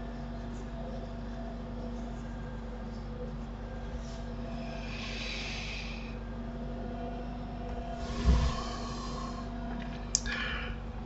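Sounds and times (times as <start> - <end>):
low electrical hum: 0.0 - 11.0
low thump: 7.7 - 8.6.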